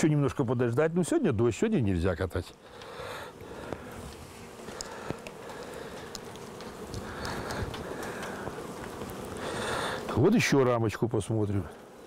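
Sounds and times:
honeybees buzzing: 0.0 - 12.0.

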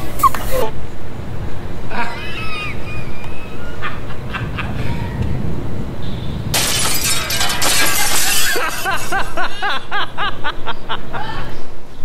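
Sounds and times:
glass pieces clattering: 6.6 - 9.7
glass shattering: 6.6 - 9.7.

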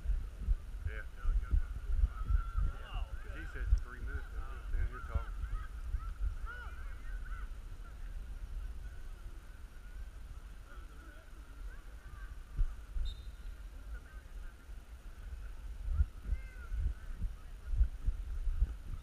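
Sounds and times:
wind rumble on microphone: 0.0 - 19.0
flock of birds calling: 2.1 - 8.2.

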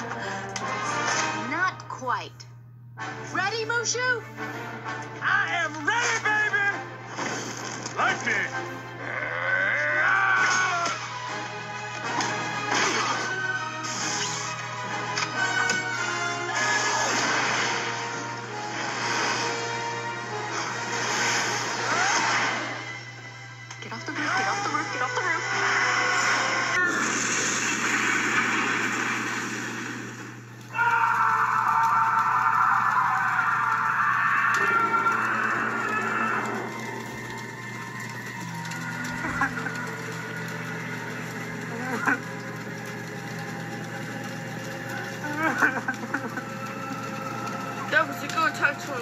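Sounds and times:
dramatic film score: 0.0 - 49.0
sound effects: 25.4 - 30.6.

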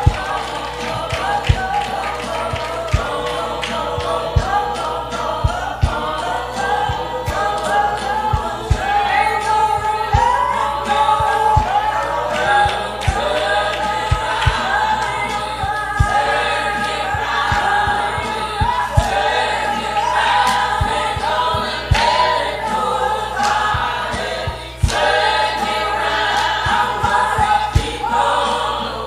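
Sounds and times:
gospel choir singing: 0.0 - 29.0
low beats: 0.0 - 29.0.

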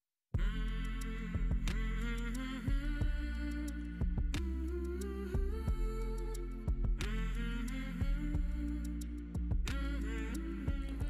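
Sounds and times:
soft background music: 0.4 - 11.0.

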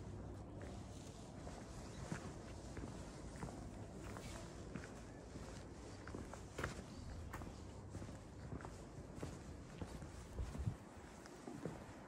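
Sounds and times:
footsteps on cobblestones: 0.0 - 12.0.

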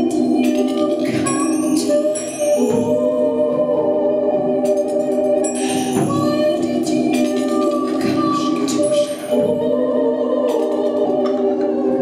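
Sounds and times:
sustained electronic chords: 0.0 - 12.0
woman singing: 0.0 - 12.0.

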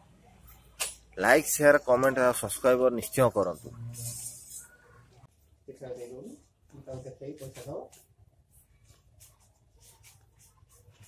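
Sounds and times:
banknotes rustling: 7.5 - 11.0.

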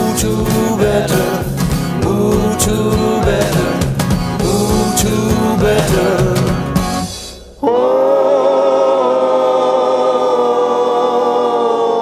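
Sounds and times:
choir holding long chord: 7.6 - 12.0.

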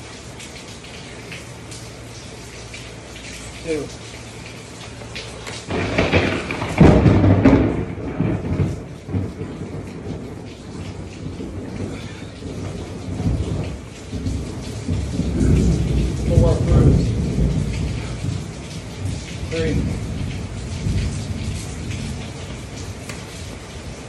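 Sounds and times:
heavy rain: 0.0 - 24.0
thunder rumbling: 5.5 - 24.0.

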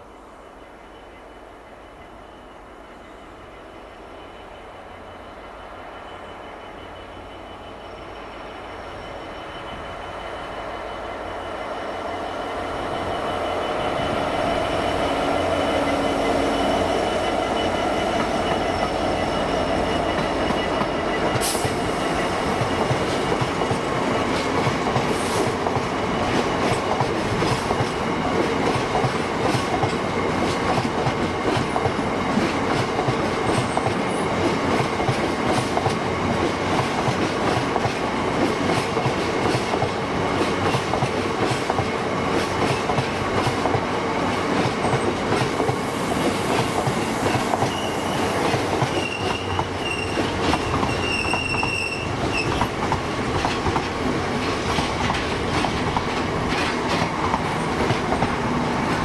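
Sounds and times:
train wheels rumbling on rails: 2.0 - 59.0
high-pitched wheel squeals: 4.1 - 23.0, 47.6 - 52.7
wheels clacking over rail joints: 47.3 - 59.0.

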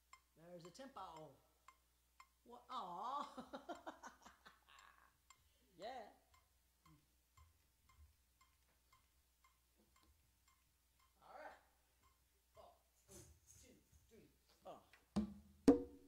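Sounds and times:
faint metronome click: 0.0 - 2.4, 6.3 - 11.2.

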